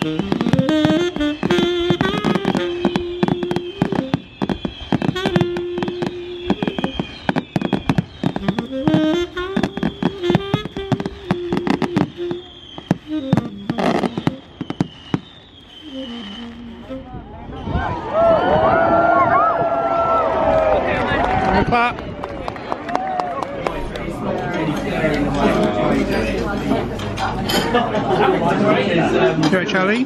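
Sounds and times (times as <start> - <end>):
music playing: 0.0 - 14.6
fireworks bursting and crackling: 0.0 - 17.8.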